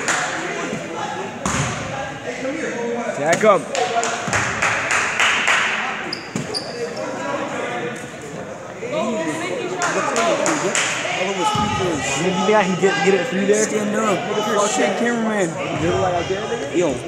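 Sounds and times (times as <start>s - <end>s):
sneaker squeaks: 6.0s - 7.2s
people shouting: 11.2s - 15.1s.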